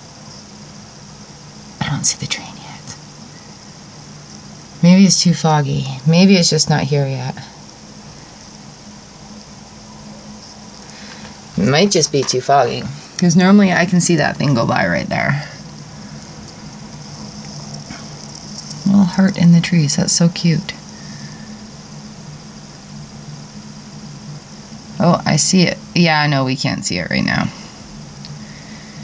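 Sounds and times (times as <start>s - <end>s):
faint high hiss: 0.0s - 29.0s
faint low hum: 0.0s - 29.0s
woman speaking: 1.8s - 3.0s, 4.8s - 7.6s, 11.6s - 15.6s, 18.8s - 20.8s, 25.0s - 27.6s.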